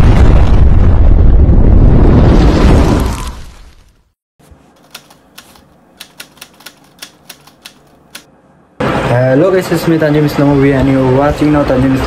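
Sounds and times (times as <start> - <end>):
typewriter key clicks: 4.8 - 8.3.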